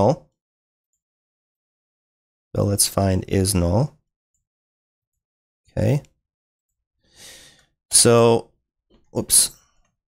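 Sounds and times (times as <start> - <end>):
man speaking: 7.9 - 8.5.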